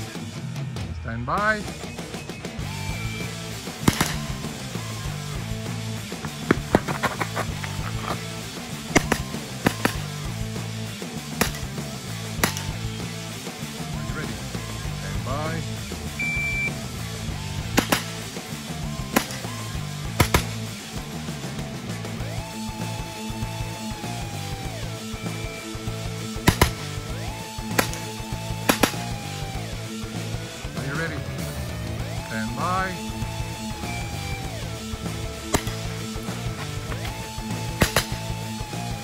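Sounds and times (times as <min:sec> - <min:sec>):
background music with steady beat: 0:00.0 - 0:39.0
sharp gunshots: 0:03.7 - 0:04.7, 0:06.2 - 0:10.4, 0:11.3 - 0:13.0, 0:17.4 - 0:18.4, 0:19.0 - 0:20.8, 0:26.3 - 0:29.7, 0:35.3 - 0:38.6.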